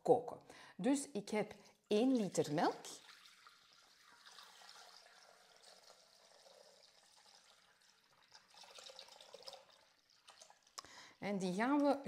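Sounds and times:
milk trickling into metal bowl: 0:01.9 - 0:10.8.

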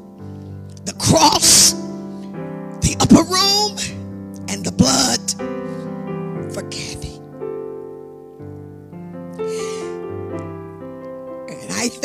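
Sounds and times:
keyboard playing sustained chords: 0:00.0 - 0:12.0.

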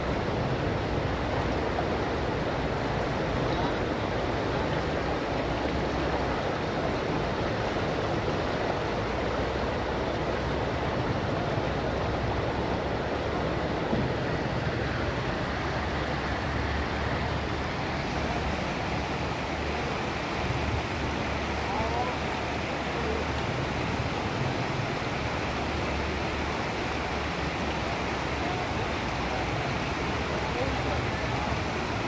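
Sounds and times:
floodwater rushing over road: 0:00.0 - 0:32.0.

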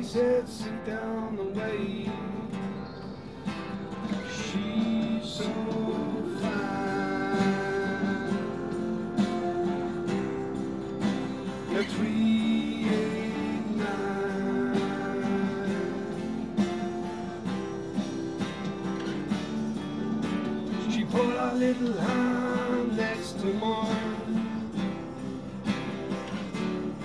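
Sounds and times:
acoustic guitar strummed and picked: 0:00.0 - 0:27.0.

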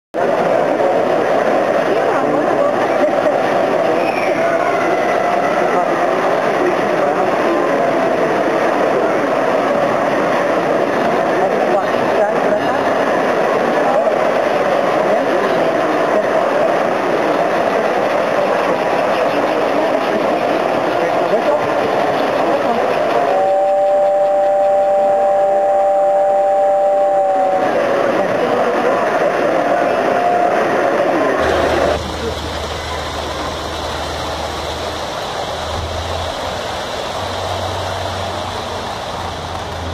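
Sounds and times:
crowd chatter: 0:00.2 - 0:39.9
model trains running: 0:00.2 - 0:39.9
two-note train horn: 0:23.2 - 0:27.8.

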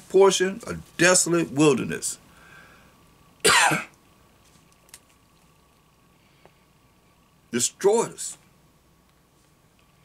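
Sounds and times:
man coughing: 0:03.4 - 0:03.9.

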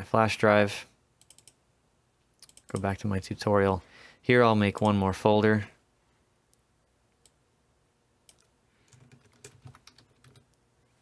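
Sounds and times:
faint keyboard typing: 0:01.2 - 0:01.6, 0:02.3 - 0:03.0, 0:08.2 - 0:11.0.

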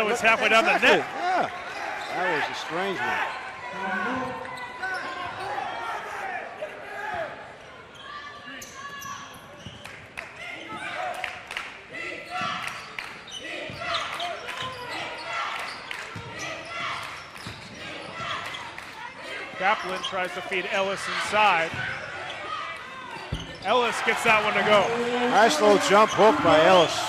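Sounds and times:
voices echoing in a gym: 0:00.0 - 0:27.0.

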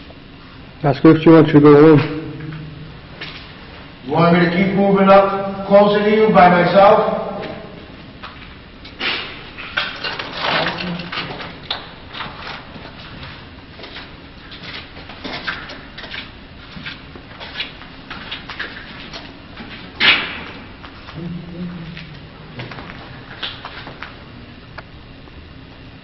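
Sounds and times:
footsteps scuffing and crunching: 0:12.2 - 0:21.2.

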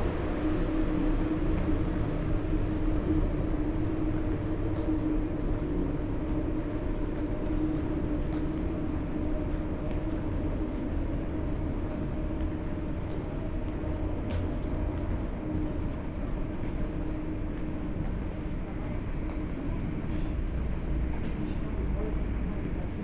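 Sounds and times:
low mechanical hum and rumble: 0:00.0 - 0:23.0.

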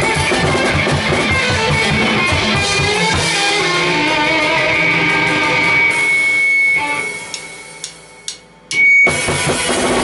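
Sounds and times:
band playing: 0:00.0 - 0:10.0
guitar amp feedback whine: 0:00.0 - 0:10.0
drumstick clicks: 0:07.3 - 0:08.8.

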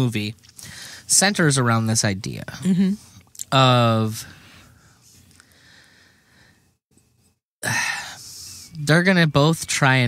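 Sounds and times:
person breathing in loudly: 0:04.4 - 0:06.7.

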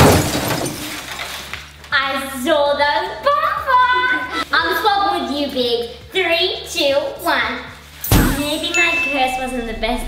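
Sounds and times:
glass shattering crash: 0:00.0 - 0:01.2, 0:08.0 - 0:09.9.

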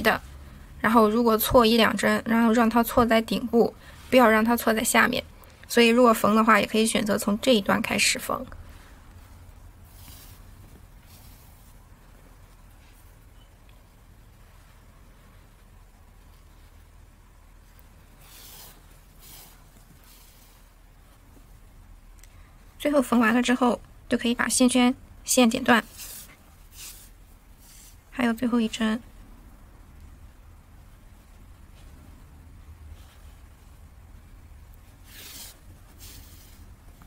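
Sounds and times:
yarn rustling through fabric: 0:00.0 - 0:29.3, 0:29.9 - 0:37.0
low steady hum: 0:00.0 - 0:37.0
yarn swishing through seam: 0:08.7 - 0:21.6, 0:25.7 - 0:28.2, 0:34.8 - 0:37.0.

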